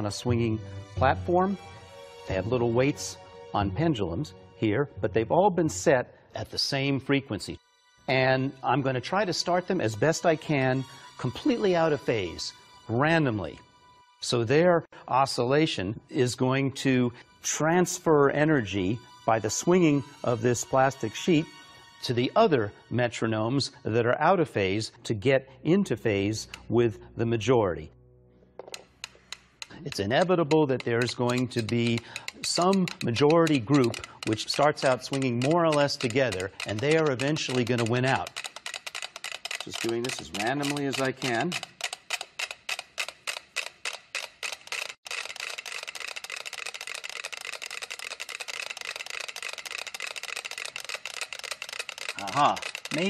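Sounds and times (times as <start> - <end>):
metronomes ticking: 28.8 - 53.0.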